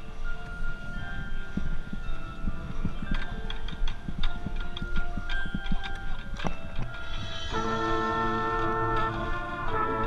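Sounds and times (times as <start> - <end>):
faint held band notes: 0.0 - 10.0
percussion clicks and hits: 1.5 - 9.8.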